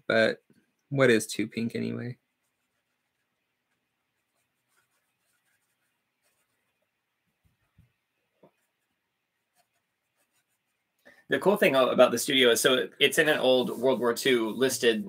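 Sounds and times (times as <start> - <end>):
brush strokes on paper: 2.2 - 15.0.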